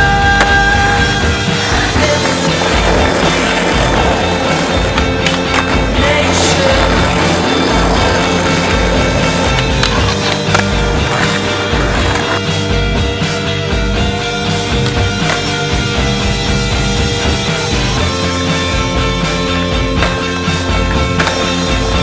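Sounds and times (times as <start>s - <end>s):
song playing: 0.0s - 21.9s
skateboard clacks: 0.4s - 12.4s, 14.8s - 15.5s, 20.0s - 22.0s
skateboard wheels rolling on asphalt: 0.9s - 12.6s.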